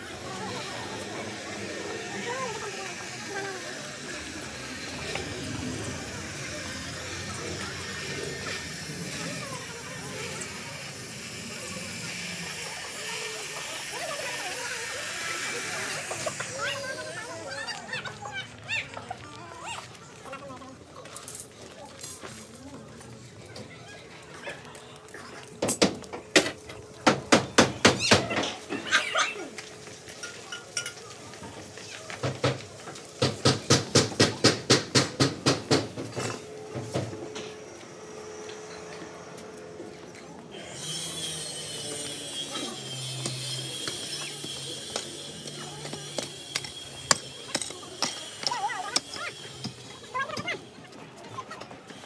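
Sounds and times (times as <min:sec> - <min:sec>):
steady street hiss: 0:00.0 - 0:52.0.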